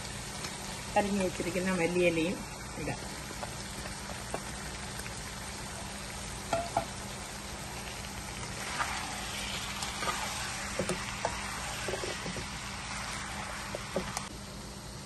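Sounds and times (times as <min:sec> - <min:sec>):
meat sizzling in a pan: 0:00.0 - 0:15.0
spatula scraping a pan: 0:08.5 - 0:14.2.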